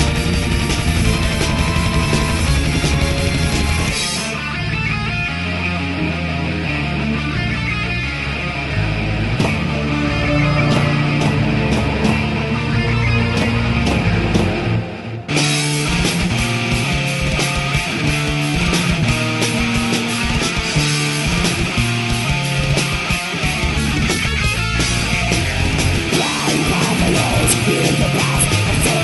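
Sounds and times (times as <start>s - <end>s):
fast drum kit playing: 0.0s - 4.4s, 9.4s - 29.0s
heavy metal guitars and bass: 0.0s - 29.0s.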